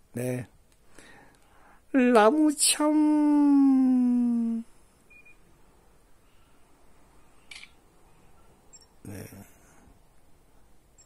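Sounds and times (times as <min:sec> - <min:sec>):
faint high beep: 0:05.1 - 0:05.4.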